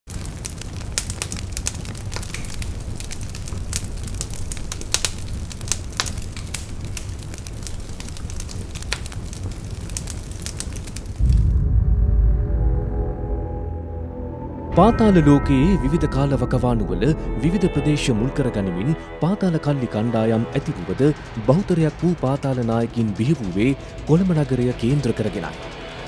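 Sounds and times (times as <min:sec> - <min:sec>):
fire crackling: 0:00.1 - 0:11.8, 0:17.0 - 0:26.0
deep bass boom: 0:11.2 - 0:17.6.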